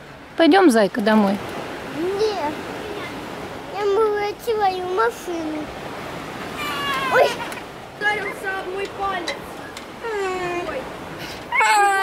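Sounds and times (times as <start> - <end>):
high wail: 6.5 - 7.6, 11.5 - 12.0
toddler crying: 6.6 - 7.6, 10.0 - 10.8, 11.5 - 12.0.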